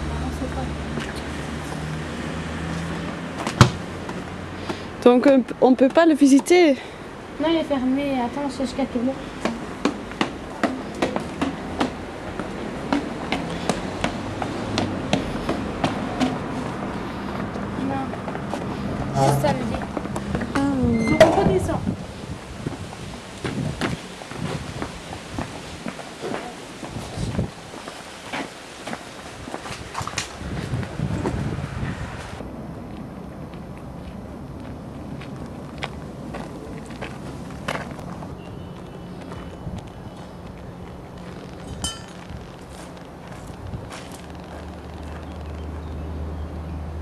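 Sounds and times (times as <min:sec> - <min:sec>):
indistinct voices: 0:17.1 - 0:22.0.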